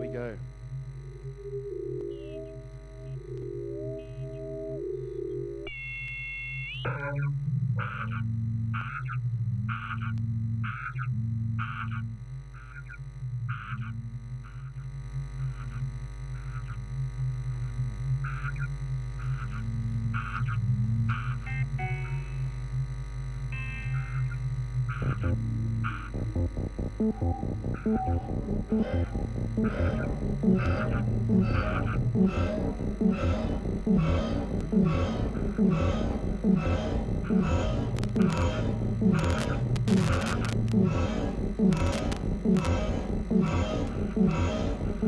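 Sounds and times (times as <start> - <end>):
gliding sine tones: 0.0 - 45.0
low pulsing drone: 0.0 - 45.0.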